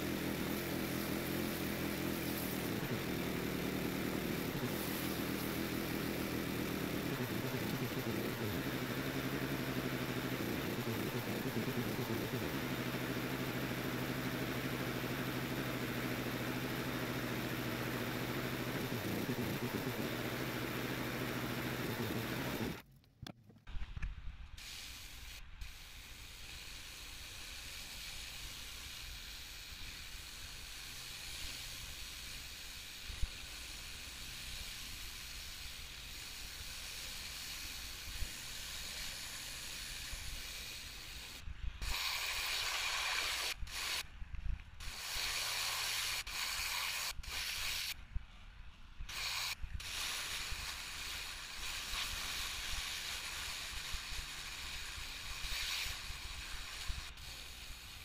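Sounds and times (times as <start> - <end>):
pressure washer engine running: 0.0 - 22.8, 24.6 - 44.0, 49.1 - 58.0
surface cleaner spraying concrete: 0.0 - 22.8, 24.6 - 44.1, 44.8 - 48.0, 49.0 - 58.0
water spray hiss: 0.0 - 22.8, 24.5 - 44.1, 44.8 - 48.0, 49.1 - 58.0.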